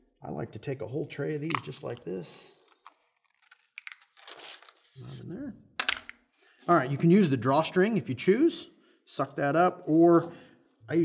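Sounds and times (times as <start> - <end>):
wordless voice sound: 0.0 - 2.8, 4.8 - 5.8, 6.6 - 11.0.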